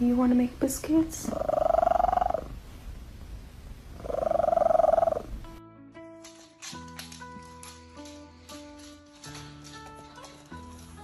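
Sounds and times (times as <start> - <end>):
cat purring: 0.9 - 2.9, 3.6 - 5.6
music with sustained notes: 5.4 - 11.0.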